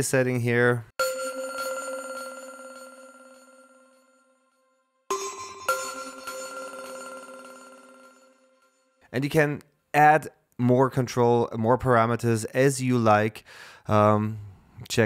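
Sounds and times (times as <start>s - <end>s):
plucked synth chords: 1.0s - 3.7s, 5.1s - 8.6s.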